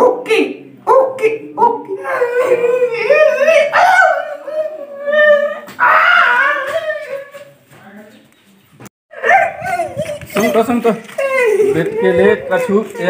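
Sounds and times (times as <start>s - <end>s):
man wailing: 1.9s - 7.4s.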